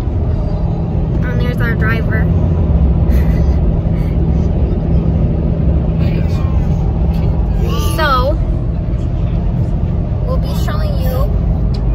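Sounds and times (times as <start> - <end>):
car road and engine rumble: 0.0 - 11.9.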